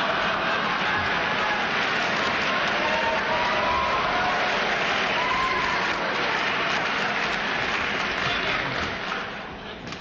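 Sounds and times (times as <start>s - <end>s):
audience laughing: 0.0s - 2.2s
audience applauding: 0.0s - 9.5s.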